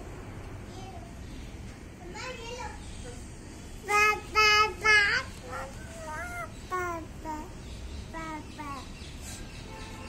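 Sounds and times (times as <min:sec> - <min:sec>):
baby babbling: 0:04.1 - 0:07.5.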